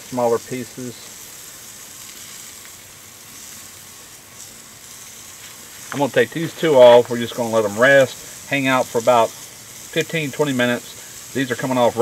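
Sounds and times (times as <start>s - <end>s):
steaks sizzling on a grill: 0.0s - 12.0s.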